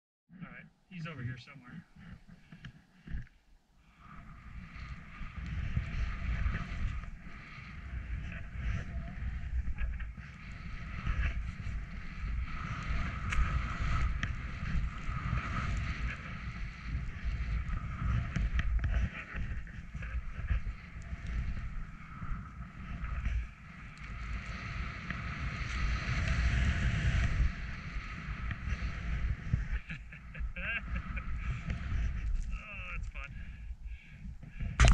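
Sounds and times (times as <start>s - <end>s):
skis hissing through powder snow: 3.9s - 33.0s
wind buffeting microphone: 3.9s - 34.9s.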